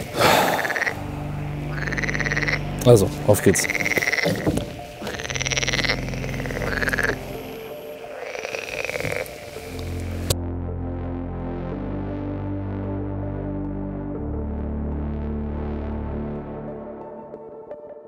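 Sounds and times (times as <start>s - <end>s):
frogs croaking: 0.0s - 10.4s
slow ambient synth music: 0.0s - 18.0s.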